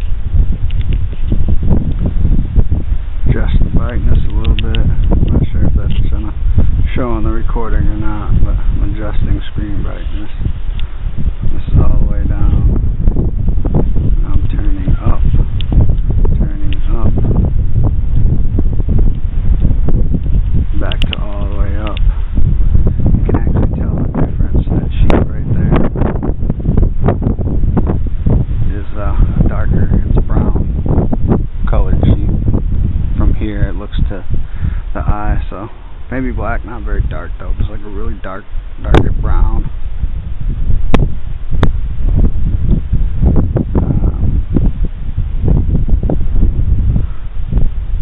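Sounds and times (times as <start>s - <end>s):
wind buffeting microphone: 0.0s - 48.0s
sharp clicks: 4.3s - 6.0s, 20.9s - 22.1s.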